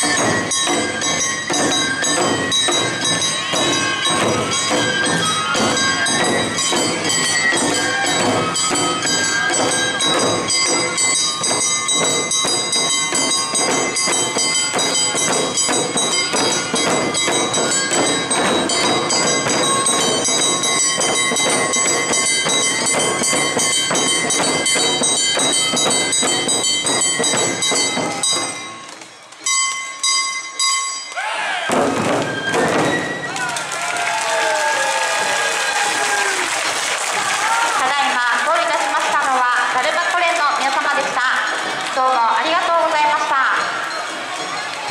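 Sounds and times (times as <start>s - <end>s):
taiko drums beaten fast: 0.0s - 28.7s, 31.7s - 44.9s.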